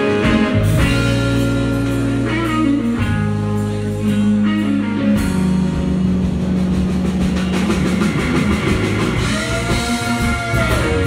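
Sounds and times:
blues band playing live: 0.0 - 11.0.

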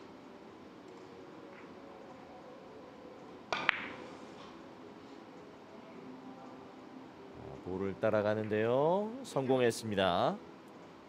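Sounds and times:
billiard balls clicking: 3.5 - 4.0
cue tip clicking ball: 3.5 - 4.0.

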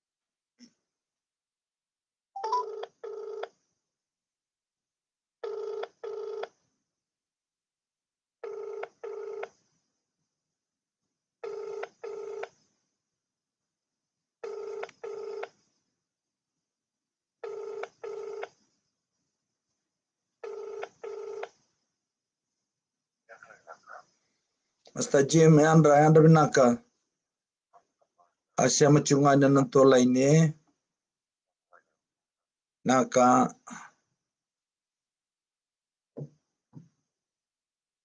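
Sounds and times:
telephone double ring: 2.4 - 3.4.

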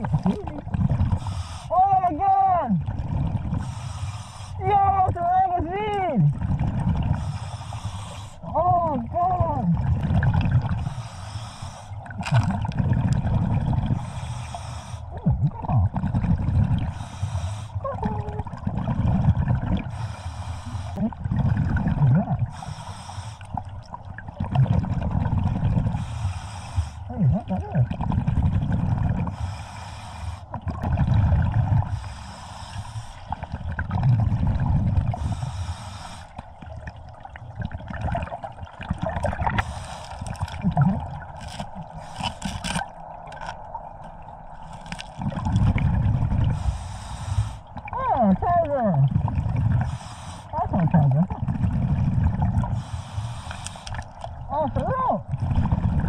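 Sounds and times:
exhaled bubbles rumbling: 0.0 - 29.6, 30.4 - 56.0
hissing regulator inhalations: 1.1 - 1.7, 3.6 - 4.6, 7.1 - 8.4, 10.8 - 12.2, 13.9 - 15.2, 16.8 - 17.9, 19.8 - 21.0, 22.4 - 23.6, 25.9 - 27.1, 29.3 - 30.6, 31.9 - 33.6, 35.2 - 36.6, 39.5 - 40.6, 41.7 - 42.9, 46.4 - 47.8, 49.7 - 50.7, 52.6 - 54.3.

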